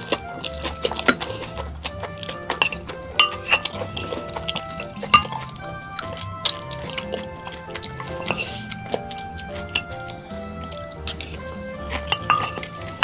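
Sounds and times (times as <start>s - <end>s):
background music: 0.0s - 13.0s
chewing: 0.0s - 13.0s
utensils clinking against bowls: 0.0s - 13.0s.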